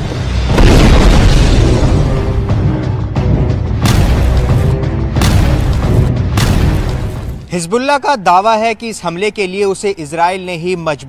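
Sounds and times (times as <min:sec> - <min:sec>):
deep rumbling explosion: 0:00.0 - 0:02.8, 0:03.8 - 0:07.5.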